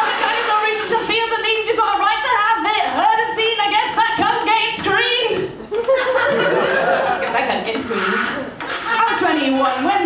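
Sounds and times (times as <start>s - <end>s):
woman rapping into microphone: 0.0s - 5.6s, 7.2s - 8.0s, 8.7s - 10.0s.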